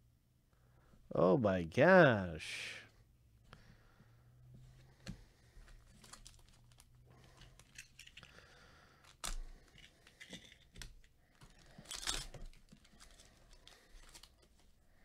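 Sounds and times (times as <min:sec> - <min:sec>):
foil wrapper crinkling: 0:05.9 - 0:07.0, 0:11.4 - 0:14.6.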